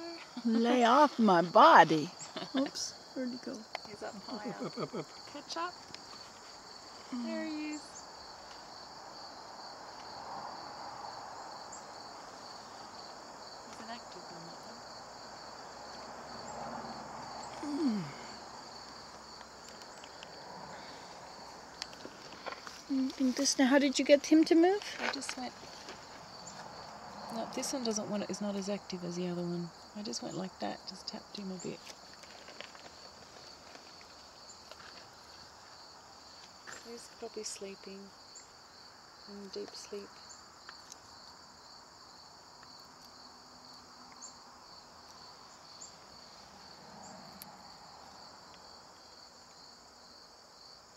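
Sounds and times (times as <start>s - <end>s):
insects chirring: 0.0s - 50.9s.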